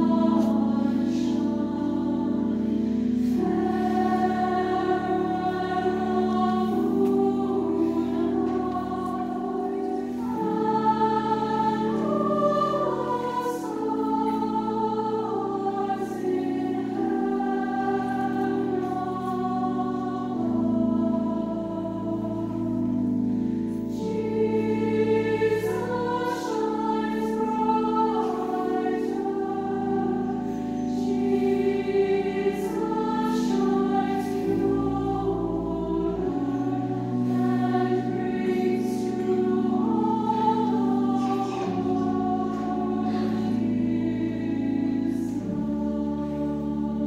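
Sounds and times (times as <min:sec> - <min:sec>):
mixed choir singing in parts: 0:00.0 - 0:47.0.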